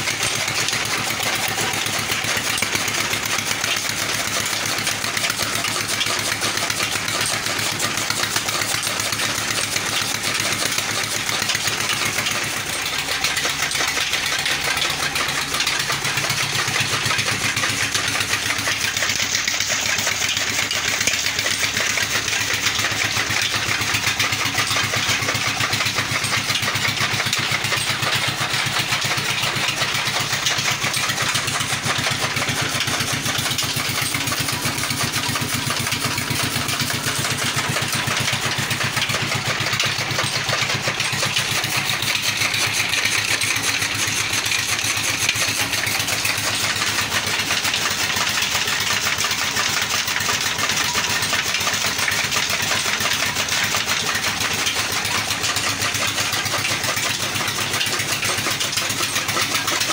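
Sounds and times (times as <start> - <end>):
diesel engine running under load: 0.0 - 59.9.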